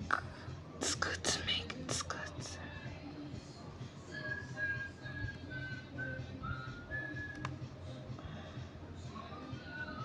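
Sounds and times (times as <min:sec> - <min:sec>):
person whispering: 0:00.0 - 0:02.7.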